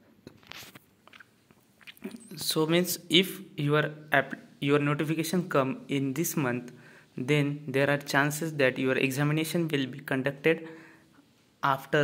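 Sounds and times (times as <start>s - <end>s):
mouth clicks and lip noises: 0.2s - 2.5s
quick breath in: 10.6s - 11.2s.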